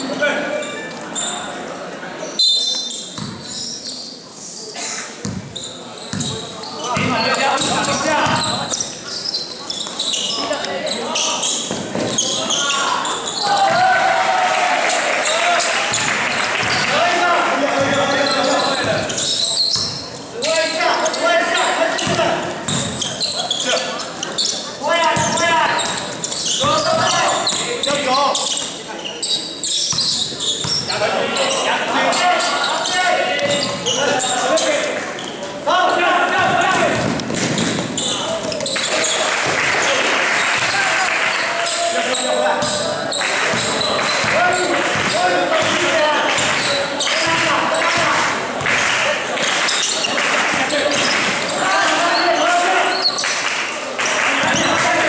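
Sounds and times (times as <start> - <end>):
basketball bouncing on hardwood floor: 3.2 - 3.4, 5.2 - 5.5, 6.1 - 6.4, 22.0 - 23.0, 36.4 - 37.9, 44.9 - 46.6.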